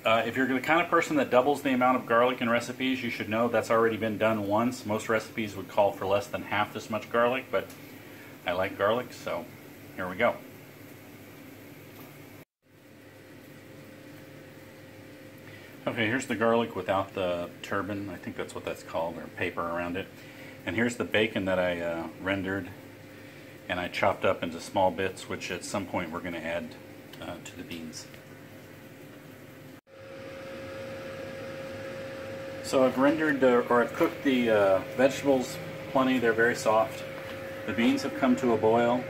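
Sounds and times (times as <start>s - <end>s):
faint steady whine: 0.0s - 39.0s
mechanical fan hum: 0.0s - 39.0s
even hiss: 31.4s - 39.0s.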